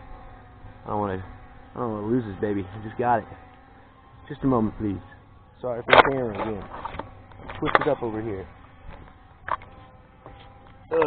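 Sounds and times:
quadcopter motors humming: 0.0 - 11.0.

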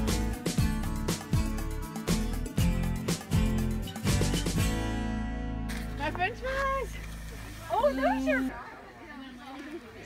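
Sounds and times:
people talking: 6.0 - 10.0.

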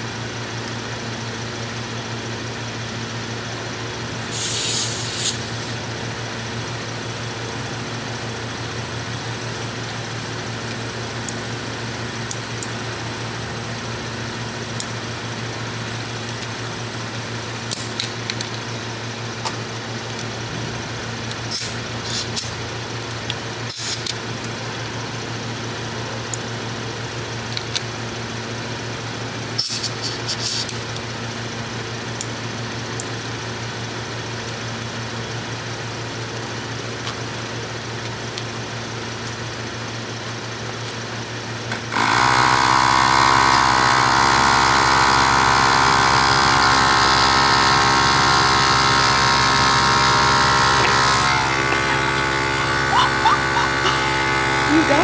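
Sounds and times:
tyre inflator compressor buzzing: 4.0 - 19.6, 20.3 - 31.4, 41.3 - 55.0.

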